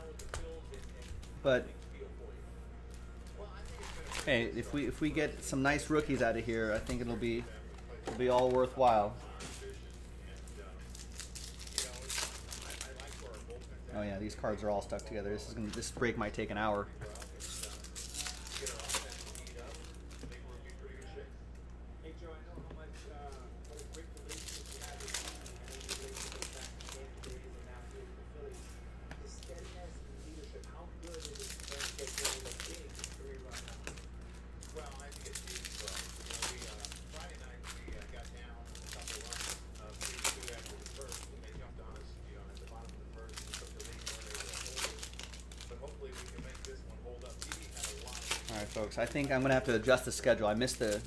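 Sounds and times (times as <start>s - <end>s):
foil wrappers crinkling and tearing: 0.0s - 2.1s, 2.9s - 21.0s, 23.2s - 28.0s, 29.2s - 51.0s
steady low hum: 0.0s - 51.0s.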